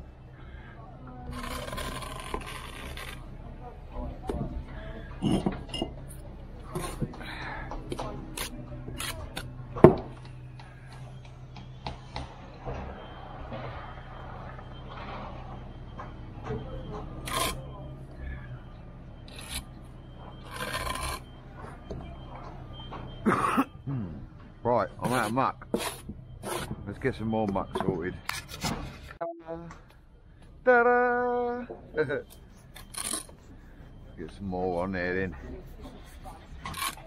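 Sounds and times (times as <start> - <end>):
steady low hum: 0.0 - 37.0
voices: 21.3 - 28.2, 29.2 - 37.0.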